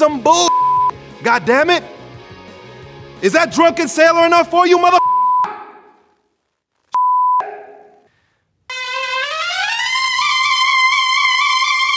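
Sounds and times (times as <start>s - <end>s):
censor bleep: 0.5s - 0.9s, 5.0s - 5.5s, 7.0s - 7.5s.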